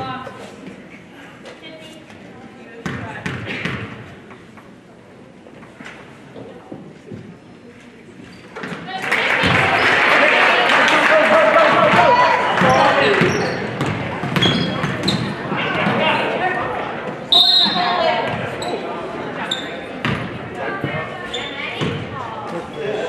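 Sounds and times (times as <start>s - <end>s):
voices echoing in a hall: 0.0s - 23.0s
sneaker squeaks: 8.2s - 8.9s, 12.6s - 15.9s, 17.3s - 22.8s.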